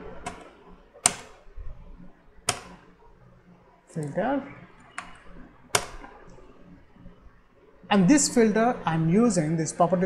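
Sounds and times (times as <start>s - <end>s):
keyboard key presses: 0.2s - 1.4s, 2.5s - 2.8s, 4.8s - 6.4s.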